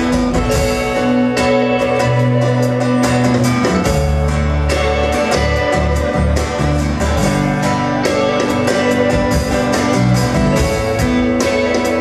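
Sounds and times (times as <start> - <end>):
acoustic guitar strumming: 0.0 - 12.0
bass guitar: 0.0 - 12.0
drum and cymbal hits: 0.0 - 12.0
electric guitar: 0.0 - 12.0.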